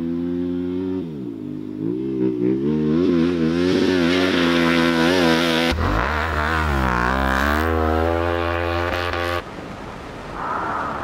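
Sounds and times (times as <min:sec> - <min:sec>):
motorcycle engine revving: 0:00.0 - 0:09.4.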